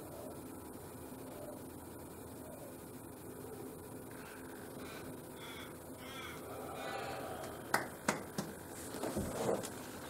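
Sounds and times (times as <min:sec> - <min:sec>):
crow cawing: 0:04.1 - 0:07.8.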